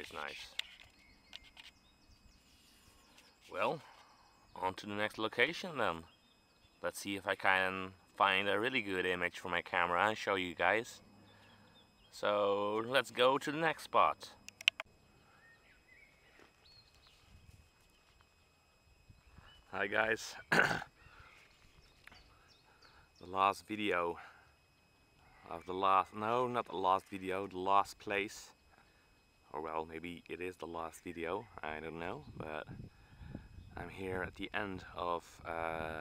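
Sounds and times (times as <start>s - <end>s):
faint outdoor ambience: 0.0s - 36.0s
faint high chirps: 10.8s - 32.7s.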